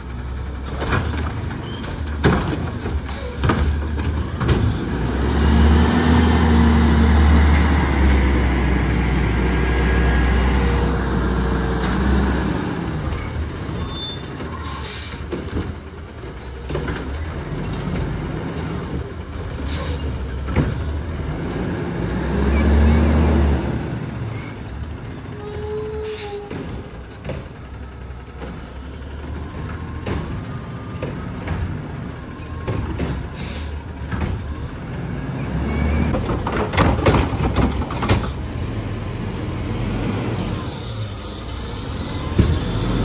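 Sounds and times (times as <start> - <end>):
garbage truck engine revving: 3.4 - 13.8, 16.8 - 25.0
air brake hisses: 33.4 - 33.9.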